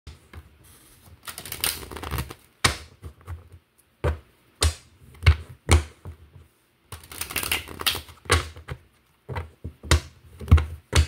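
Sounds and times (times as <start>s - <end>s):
cards being riffle-shuffled: 0.6s - 2.5s, 6.9s - 8.6s.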